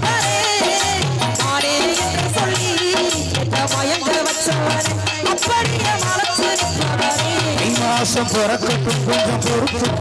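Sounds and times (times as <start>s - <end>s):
drums and shaker beat: 0.0s - 10.0s
woman singing into a microphone: 0.0s - 10.0s.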